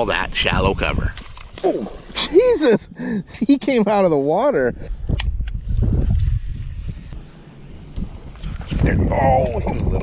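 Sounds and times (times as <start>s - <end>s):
wind buffeting microphone: 4.7s - 10.0s.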